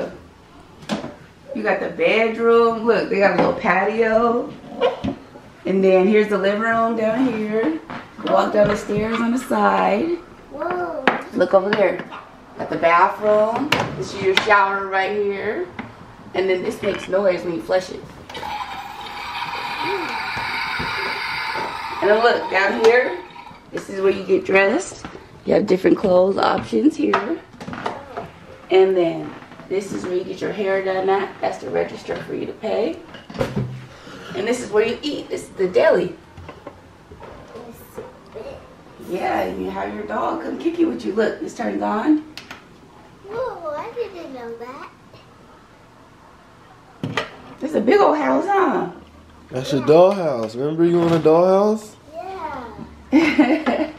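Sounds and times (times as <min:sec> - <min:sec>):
toilet flush water rushing: 0:18.3 - 0:24.0.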